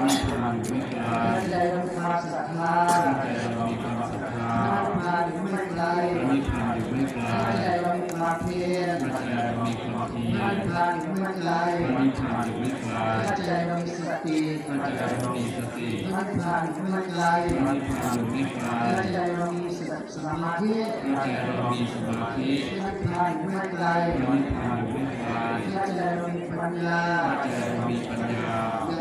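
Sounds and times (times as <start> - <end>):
person chanting held notes: 0.0 - 29.0.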